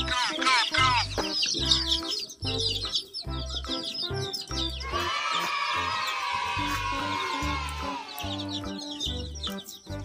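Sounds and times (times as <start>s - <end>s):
background music with low beat: 0.0s - 10.0s
chicks peeping: 0.0s - 10.0s.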